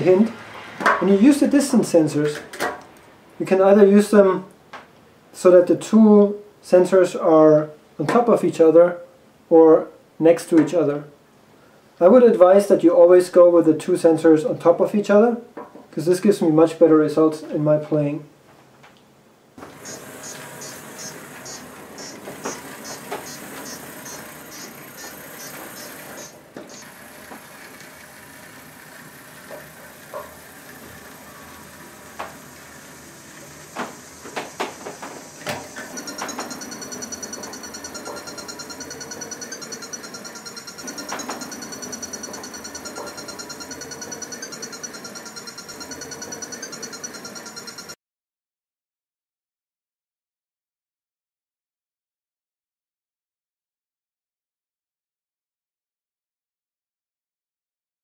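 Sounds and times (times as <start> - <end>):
small electric motors whirring: 19.6 - 47.9.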